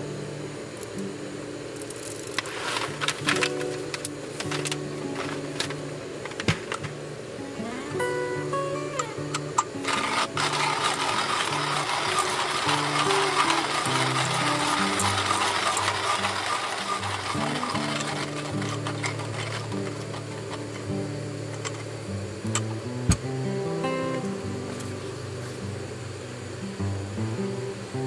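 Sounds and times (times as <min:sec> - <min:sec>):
hand coffee grinder crunching beans: 0:01.8 - 0:06.8, 0:09.3 - 0:21.0.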